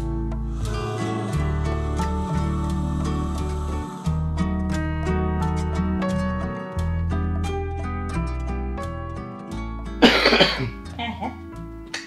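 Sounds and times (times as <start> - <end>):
plucked-string background music: 0.0 - 12.0
man coughing: 10.0 - 10.8.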